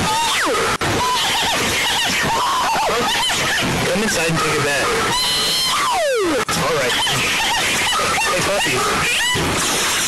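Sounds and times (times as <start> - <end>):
warbling voice-like call: 0.0 - 10.0.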